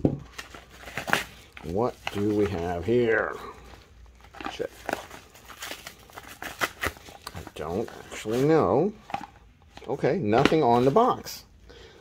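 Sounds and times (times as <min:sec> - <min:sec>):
plastic mailer crinkling: 0:00.3 - 0:11.3.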